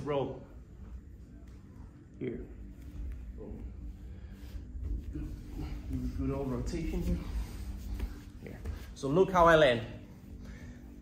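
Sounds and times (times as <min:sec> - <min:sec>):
low room rumble: 0:00.0 - 0:11.0
bodies rolling on foam mat: 0:04.5 - 0:09.4.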